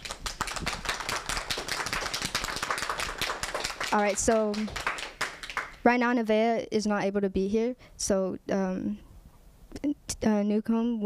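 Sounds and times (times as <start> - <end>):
small group clapping: 0.0 - 5.9.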